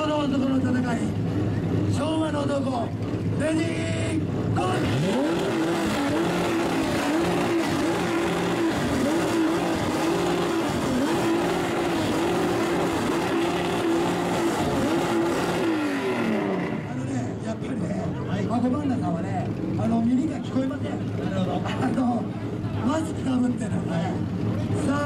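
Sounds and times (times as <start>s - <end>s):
car exhausts revving: 4.0s - 17.1s.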